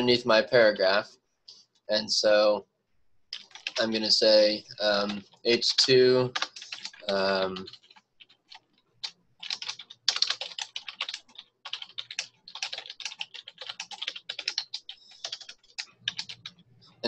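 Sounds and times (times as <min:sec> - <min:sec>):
typing on computer keyboard: 0:03.3 - 0:03.9, 0:05.0 - 0:16.6.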